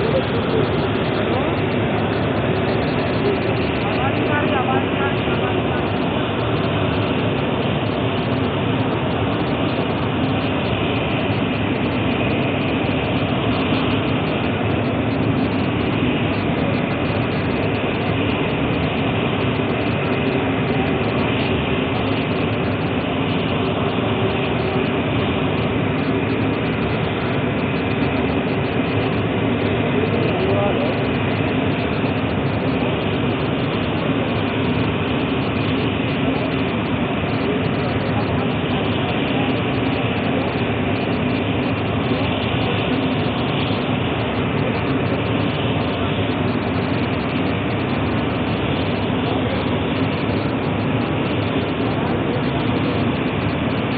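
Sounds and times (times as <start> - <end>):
loud machinery drone: 0.0 - 53.9.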